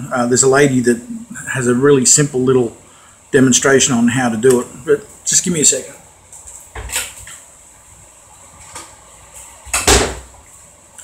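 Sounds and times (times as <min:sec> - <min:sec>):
kitchen knock: 0:09.8 - 0:10.3.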